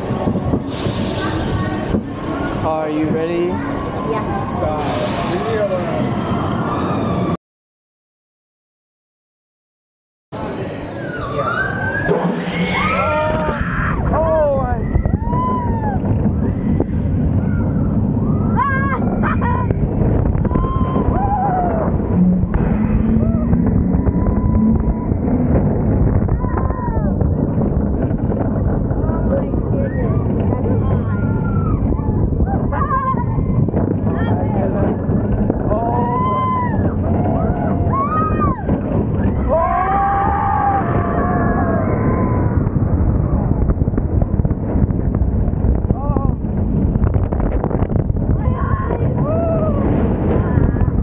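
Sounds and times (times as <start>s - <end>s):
roller coaster wheel rumble: 0.0s - 7.4s, 10.4s - 51.0s
rushing wind: 0.0s - 7.4s, 10.4s - 51.0s
low hum: 10.4s - 51.0s
riders whooping and screaming: 10.9s - 22.4s, 23.0s - 27.4s, 29.7s - 33.8s, 34.9s - 43.4s, 48.4s - 51.0s
riders screaming: 11.0s - 14.1s.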